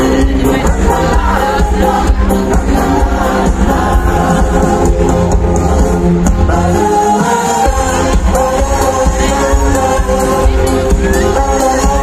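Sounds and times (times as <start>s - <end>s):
group of voices singing: 0.0s - 12.0s
live band music: 0.0s - 12.0s.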